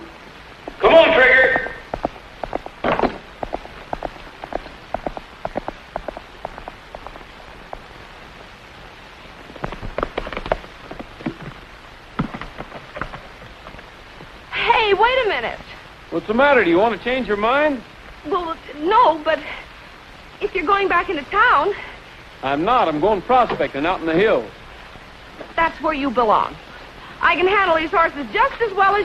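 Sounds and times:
film soundtrack hiss: 0.0s - 29.0s.

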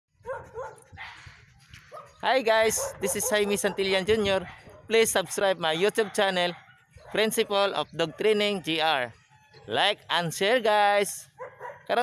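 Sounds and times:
dog barking: 0.2s - 1.2s, 1.9s - 4.9s, 5.8s - 7.3s, 8.0s - 8.3s, 11.4s - 11.9s.

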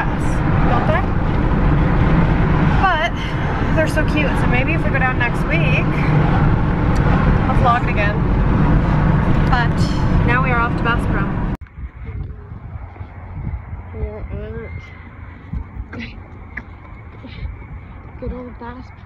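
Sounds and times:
woman talking: 0.0s - 1.1s, 2.8s - 6.1s, 7.5s - 8.2s, 9.4s - 11.4s, 15.9s - 16.2s, 17.2s - 17.5s
car road and engine rumble: 0.0s - 19.0s.

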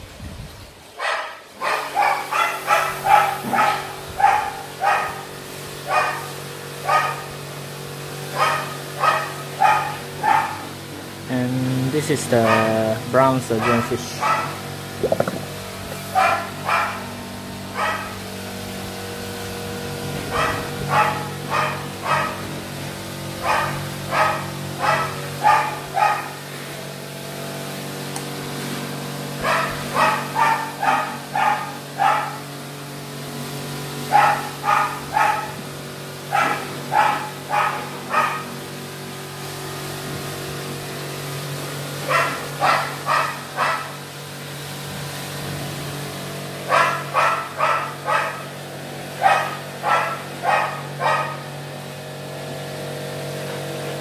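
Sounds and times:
dog barking: 1.0s - 7.4s, 8.3s - 10.7s, 12.4s - 12.8s, 13.6s - 14.6s, 16.1s - 17.1s, 17.7s - 18.2s, 20.3s - 22.5s, 23.4s - 26.4s, 29.4s - 32.5s, 34.1s - 35.6s, 36.3s - 38.5s, 42.0s - 44.0s, 46.6s - 48.6s, 49.2s - 51.5s
steady low hum: 1.5s - 28.7s.

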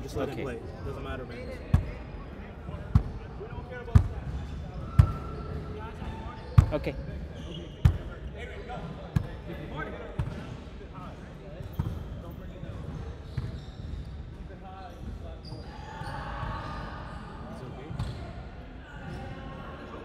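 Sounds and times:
faint voices talking: 0.0s - 20.0s.

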